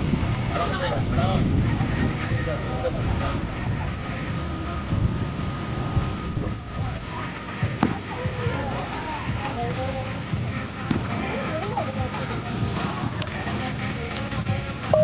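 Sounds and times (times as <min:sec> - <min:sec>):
voices talking: 0:00.0 - 0:15.0.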